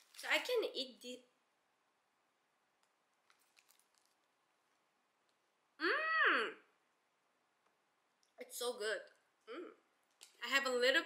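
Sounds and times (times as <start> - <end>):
soft chewing mouth sounds: 2.8 - 5.5.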